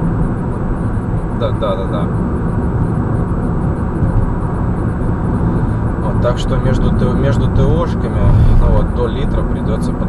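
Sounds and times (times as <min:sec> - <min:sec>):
car engine running: 0:00.0 - 0:10.0
tyres rumbling on asphalt: 0:00.0 - 0:10.0.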